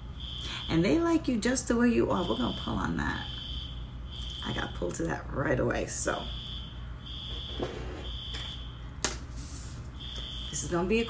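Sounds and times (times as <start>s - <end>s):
fire alarm beeping: 0.0s - 9.0s, 10.0s - 11.0s.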